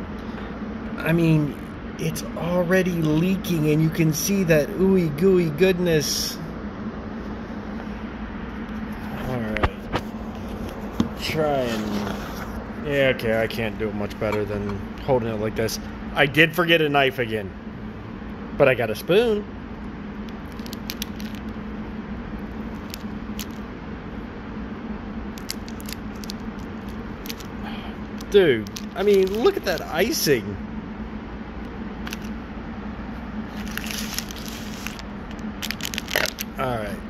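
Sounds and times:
steady low hum: 0:00.0 - 0:37.0
plastic wrapper crinkling: 0:20.4 - 0:21.5, 0:22.7 - 0:23.6, 0:25.4 - 0:30.0, 0:32.0 - 0:32.3, 0:33.5 - 0:36.6.

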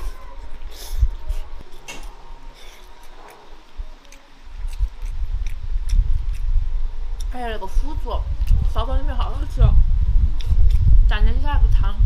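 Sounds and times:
close chewing mouth sounds: 0:00.0 - 0:06.6, 0:08.4 - 0:08.7
low rumble: 0:00.0 - 0:12.0.

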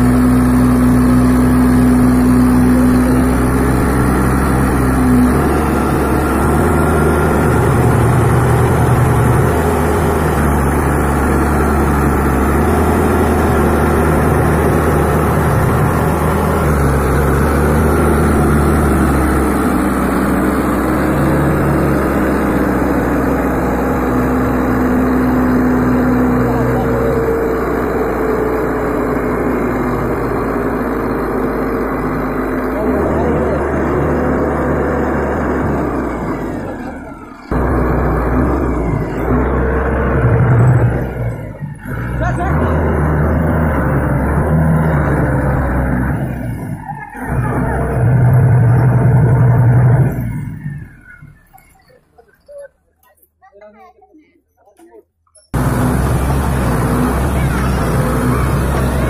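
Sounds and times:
tractor diesel engine running: 0:00.0 - 0:52.7, 0:55.5 - 0:59.0.

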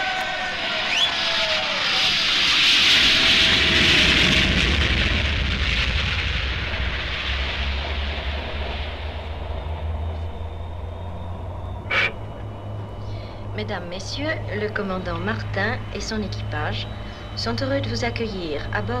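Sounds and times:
aircraft engine roar: 0:00.0 - 0:19.0
deep rumble: 0:03.0 - 0:19.0.

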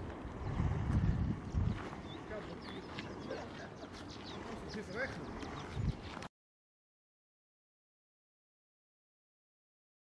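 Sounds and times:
wind buffeting microphone: 0:00.0 - 0:06.3.

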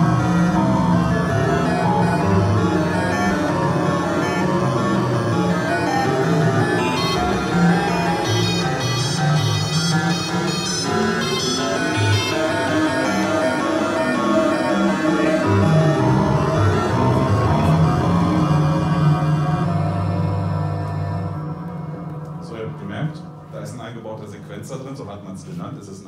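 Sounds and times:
synthesizer notes: 0:00.0 - 0:24.8.

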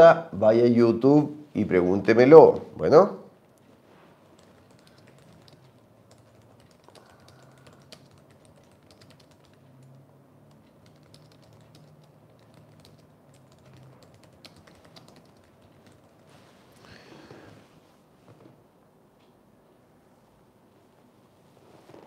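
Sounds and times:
typing on computer keyboard: 0:04.3 - 0:16.3.

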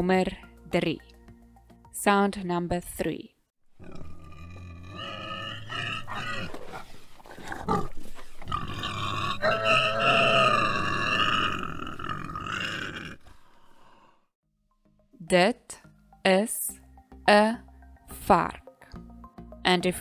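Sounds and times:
pig squealing: 0:03.8 - 0:06.9, 0:08.5 - 0:13.2.

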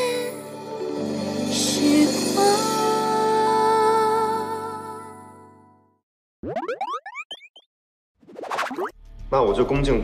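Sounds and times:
rising pitch glides sound effect: 0:06.4 - 0:07.7.

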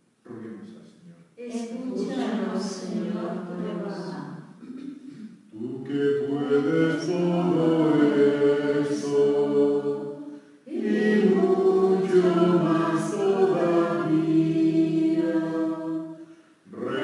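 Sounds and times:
choir singing: 0:01.4 - 0:04.4, 0:05.6 - 0:17.0.

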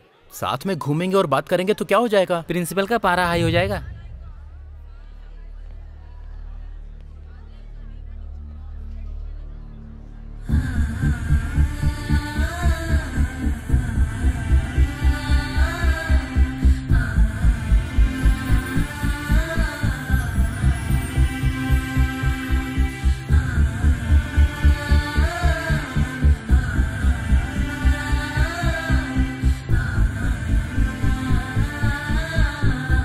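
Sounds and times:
pulsing bass beat: 0:03.2 - 0:05.9, 0:10.5 - 0:33.0.

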